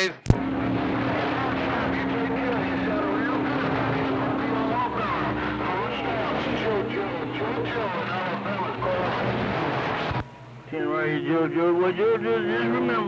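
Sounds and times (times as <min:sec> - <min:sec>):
radio static: 0:00.0 - 0:10.2
low heterodyne tone: 0:00.4 - 0:13.0
garbled radio voices: 0:00.8 - 0:13.0.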